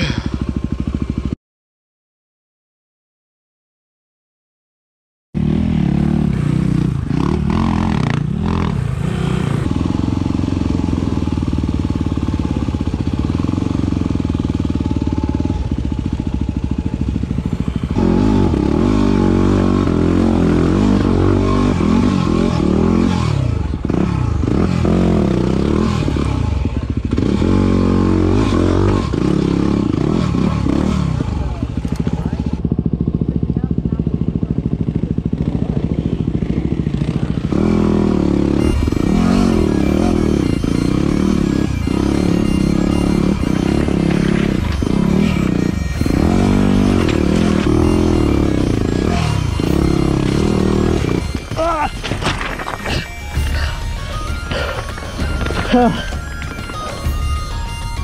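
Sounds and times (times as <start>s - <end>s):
motorcycle engine revving: 0.0s - 1.4s, 5.4s - 58.0s.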